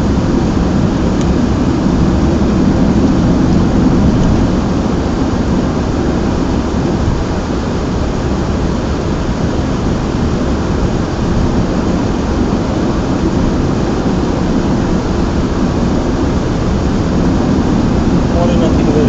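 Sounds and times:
car cabin road rumble: 0:00.0 - 0:08.6, 0:09.2 - 0:19.0.

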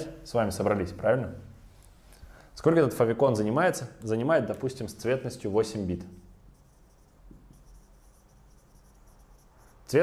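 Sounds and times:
marker scratching on whiteboard: 0:06.4 - 0:10.0.

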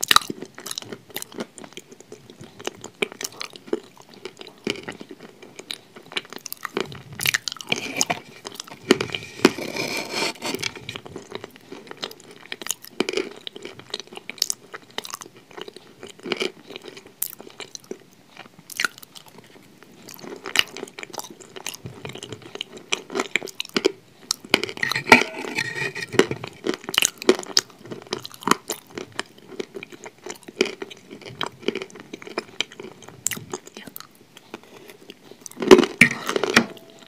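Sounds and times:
person chewing food: 0:00.0 - 0:37.0.

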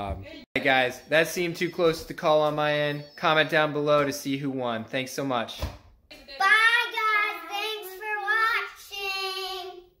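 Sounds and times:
young girl singing: 0:06.4 - 0:10.0.

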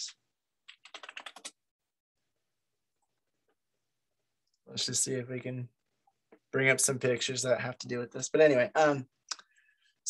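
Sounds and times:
computer keyboard typing: 0:00.6 - 0:01.6.

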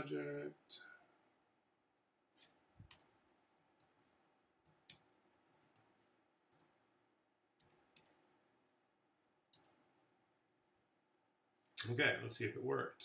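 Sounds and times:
mouse and keyboard clicks: 0:02.9 - 0:05.9, 0:06.5 - 0:06.7, 0:07.6 - 0:08.2, 0:09.5 - 0:09.8.

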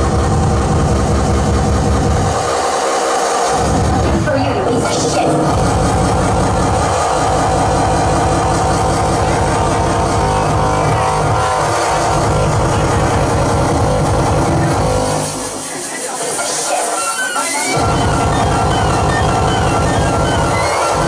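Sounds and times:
heavy bass beat: 0:00.0 - 0:21.0
loud dance music: 0:00.0 - 0:21.0.

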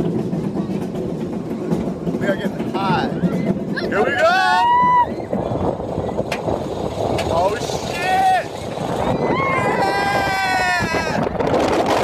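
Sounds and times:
roller coaster rumble: 0:00.0 - 0:12.0
wind on microphone: 0:02.8 - 0:12.0
riders yelling: 0:03.8 - 0:05.2, 0:07.4 - 0:08.6, 0:09.2 - 0:11.2.

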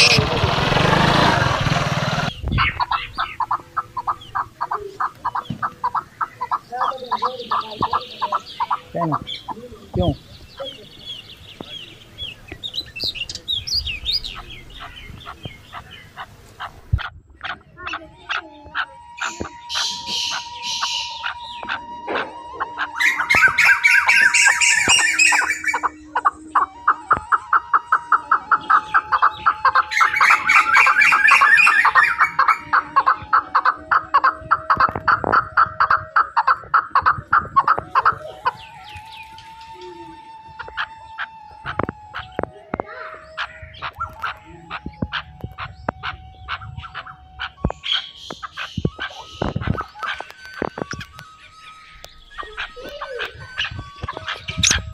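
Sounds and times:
birds chirping and calling: 0:00.0 - 0:54.9
rapid repeated bird notes: 0:00.0 - 0:54.9.

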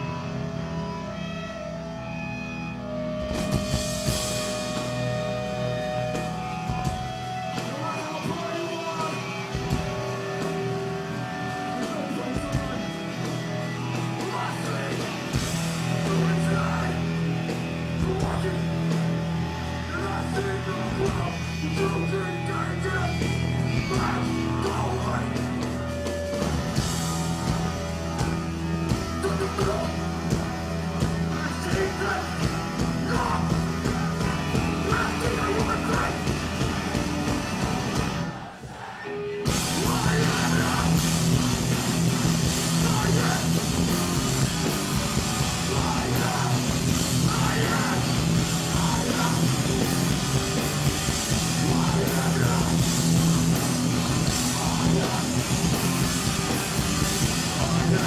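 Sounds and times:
drums: 0:00.0 - 0:58.0
electric guitar chords: 0:00.0 - 0:58.0
punk band playing live: 0:00.0 - 0:58.0
shouted vocals: 0:31.4 - 0:41.5, 0:42.5 - 0:56.2.

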